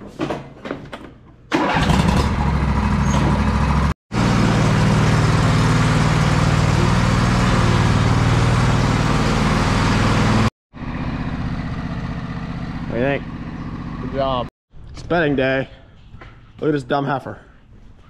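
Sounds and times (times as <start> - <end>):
riding mower engine starting and running: 1.5 - 14.5.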